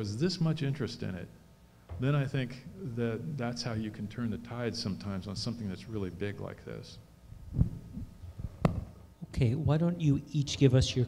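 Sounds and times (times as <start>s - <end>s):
microphone handling thumps: 1.8s - 2.3s, 7.4s - 9.0s
microphone knocking on table: 1.9s - 2.1s.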